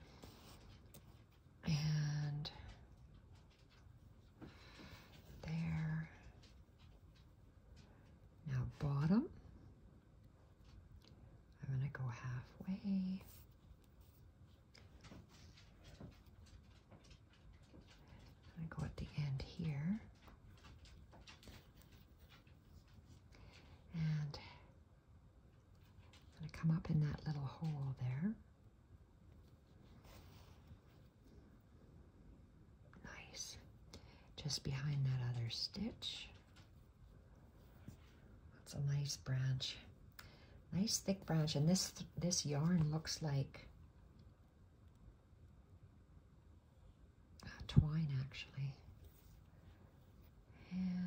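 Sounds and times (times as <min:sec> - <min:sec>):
woman speaking softly: 0:01.6 - 0:02.8, 0:05.4 - 0:06.5, 0:08.4 - 0:09.4, 0:11.6 - 0:13.4, 0:18.5 - 0:20.2, 0:23.9 - 0:24.7, 0:26.3 - 0:28.4, 0:33.0 - 0:33.7, 0:34.4 - 0:36.5, 0:38.5 - 0:40.0, 0:40.7 - 0:43.7, 0:47.4 - 0:48.9, 0:50.6 - 0:51.0
woman whispering and murmuring: 0:01.6 - 0:02.8, 0:05.4 - 0:06.4, 0:11.6 - 0:13.4, 0:18.6 - 0:20.2, 0:23.9 - 0:24.7, 0:33.0 - 0:33.7, 0:38.6 - 0:39.9, 0:47.4 - 0:48.9, 0:50.6 - 0:51.0.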